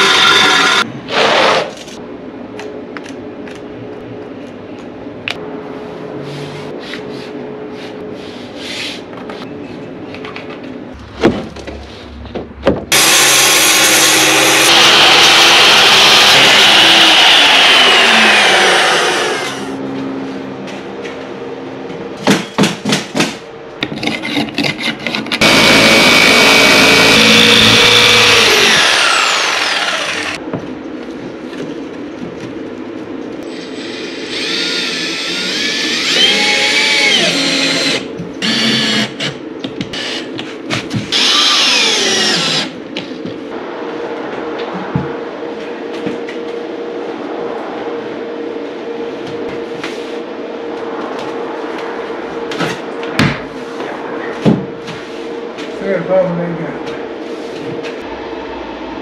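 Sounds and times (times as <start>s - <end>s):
jigsaw cutting board: 0.0s - 1.7s, 12.9s - 19.6s, 24.2s - 30.4s
circular saw cutting board: 12.9s - 19.8s, 24.8s - 30.4s
cordless drill driving screws: 25.4s - 30.4s.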